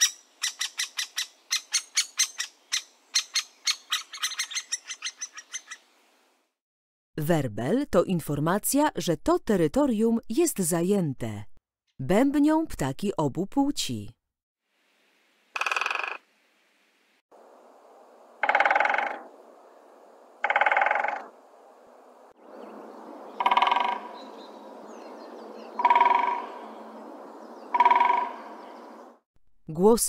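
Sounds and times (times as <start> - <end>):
woodpecker drumming on wood: 15.6 - 16.2, 18.4 - 19.3, 20.4 - 21.3, 23.4 - 24.3, 25.8 - 26.7, 27.7 - 28.6.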